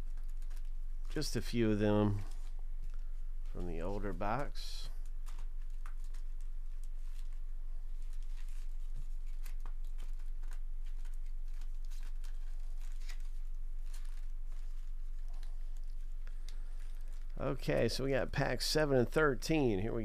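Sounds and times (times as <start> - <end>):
foil card packs crinkling: 0.0 - 17.4
low electrical hum: 0.0 - 20.0.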